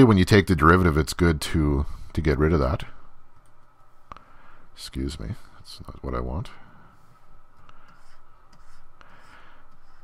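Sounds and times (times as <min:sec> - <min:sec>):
stylus scratching on pen tablet: 0:07.6 - 0:10.0.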